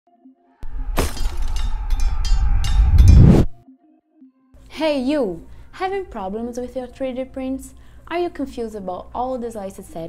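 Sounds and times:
deep rumble: 0.6s - 3.5s
loud crashing hits: 0.6s - 3.5s.

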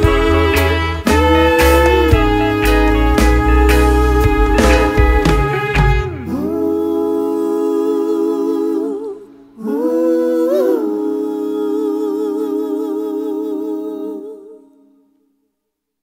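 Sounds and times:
guitar chord: 0.0s - 6.4s
person humming held notes: 0.0s - 14.8s.

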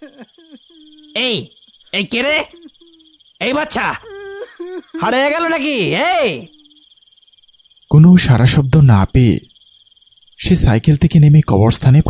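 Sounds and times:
crickets chirping: 0.0s - 12.0s
person shouting: 3.8s - 6.5s.

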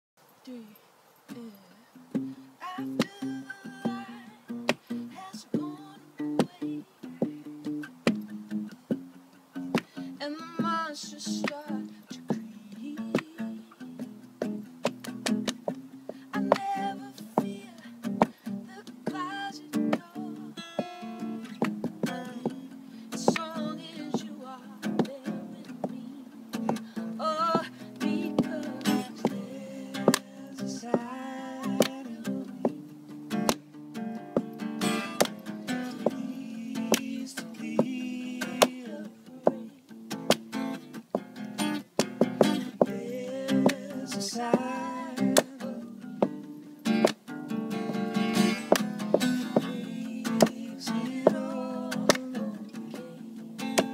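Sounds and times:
acoustic guitar strumming: 1.3s - 53.9s.

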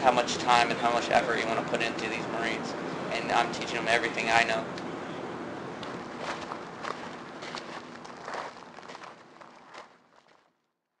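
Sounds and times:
footsteps: 5.8s - 10.6s.

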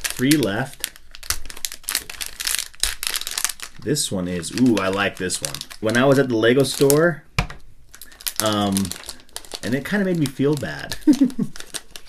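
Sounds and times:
packet tearing: 0.0s - 7.1s, 7.9s - 12.0s
plastic packet crinkling: 0.0s - 7.2s, 7.9s - 12.0s.

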